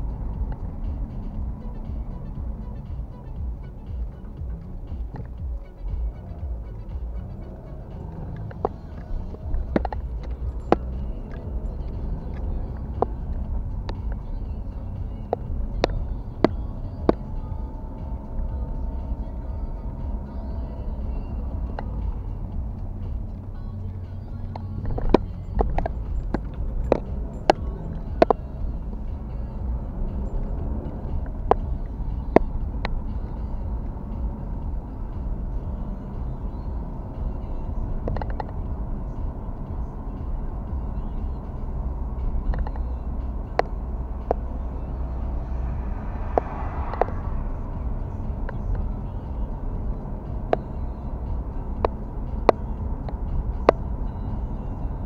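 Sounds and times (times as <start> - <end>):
engine and tyres rumbling: 0.0 - 55.0
sharp clicks: 36.9 - 39.4, 42.2 - 44.5.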